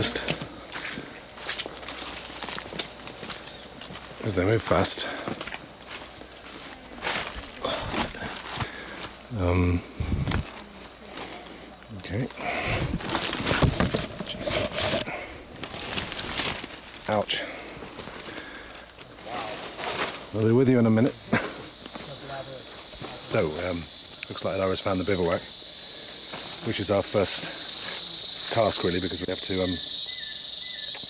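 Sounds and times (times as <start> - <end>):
footsteps crunching on dead leaves: 0.0 - 9.3, 12.4 - 20.4
insects droning: 0.0 - 31.0.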